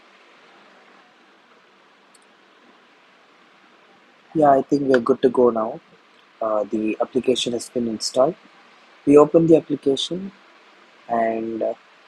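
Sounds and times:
faint microphone hiss: 0.0s - 12.0s.

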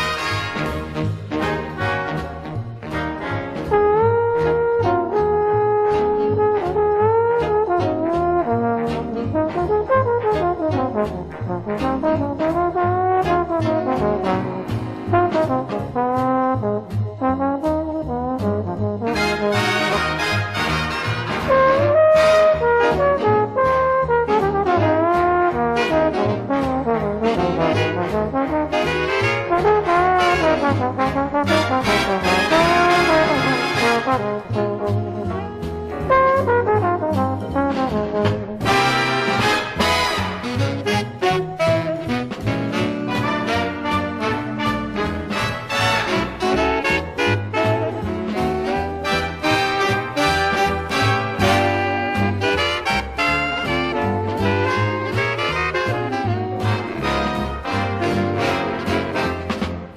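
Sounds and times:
big band jazz: 0.0s - 59.9s
lead trombone melody: 0.0s - 59.9s.

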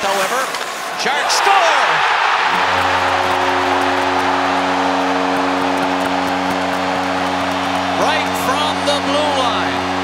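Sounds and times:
crowd cheering: 0.8s - 10.0s
goal horn: 2.2s - 10.0s.

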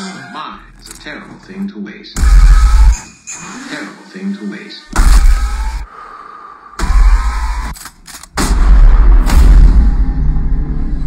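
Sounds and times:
trailer music: 2.2s - 3.2s, 6.7s - 11.0s
deep booming impact hits: 8.4s - 11.0s.

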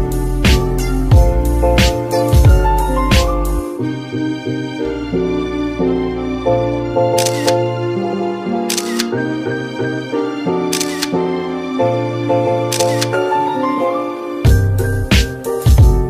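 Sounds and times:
melodic background music: 0.0s - 16.0s
phone camera shutter clicks: 7.2s - 7.6s, 8.7s - 9.2s, 10.7s - 11.2s, 12.7s - 13.2s.

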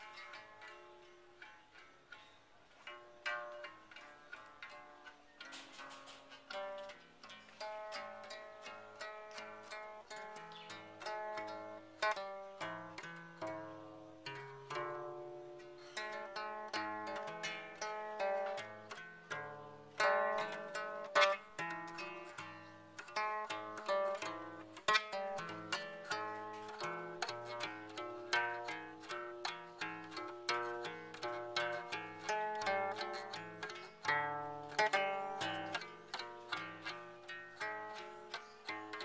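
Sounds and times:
plucked zither notes: 0.0s - 39.0s.

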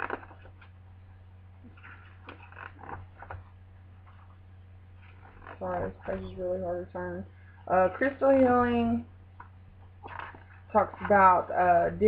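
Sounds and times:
paper rustling: 0.0s - 0.8s, 1.6s - 4.4s, 10.0s - 11.3s
low electrical hum: 0.0s - 12.0s.

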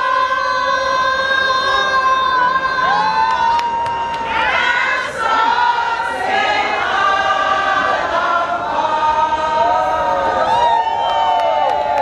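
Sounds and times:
women singing and cheering: 0.0s - 12.0s.

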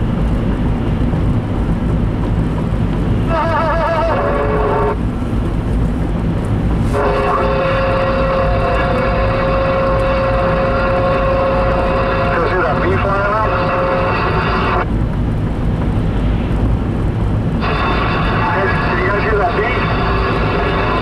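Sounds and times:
road and tyre noise: 0.0s - 21.0s
steady pitched tone: 6.9s - 14.9s, 17.6s - 21.0s.

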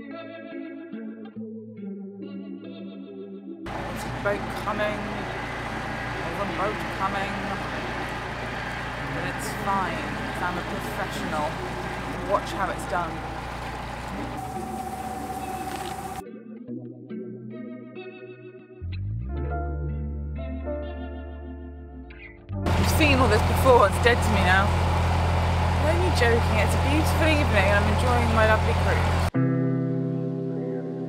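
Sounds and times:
background guitar music: 0.0s - 24.7s, 25.8s - 31.0s
diesel boat engine droning: 3.7s - 16.2s, 22.7s - 29.4s.

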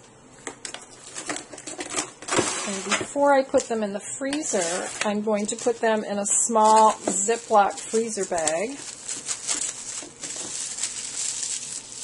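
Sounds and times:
plastic bag crinkling: 4.4s - 12.0s.

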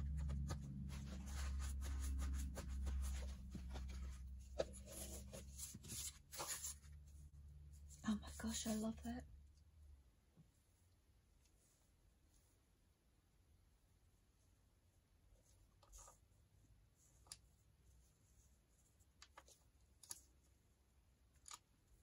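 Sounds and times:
paper and fabric rustling: 0.0s - 7.1s
steady low hum: 0.0s - 15.3s.

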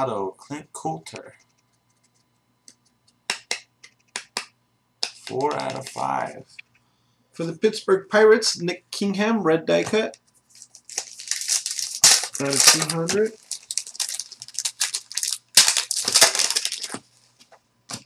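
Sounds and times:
wrappers crinkling and rustling: 10.4s - 17.5s.

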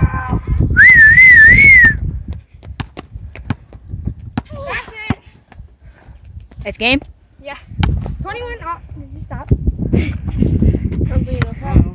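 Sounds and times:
person whistling: 0.8s - 2.0s
basketball bouncing on asphalt: 2.3s - 5.8s, 6.4s - 8.4s, 11.3s - 11.7s.

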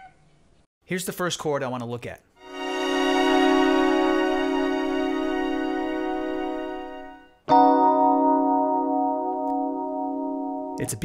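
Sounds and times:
held chord: 2.4s - 11.0s
electric piano chord: 2.7s - 11.0s.

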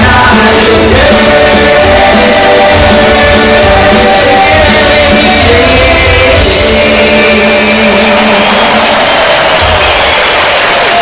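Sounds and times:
crowd cheering and applauding: 0.0s - 11.0s
live band closing chord: 0.0s - 11.0s.

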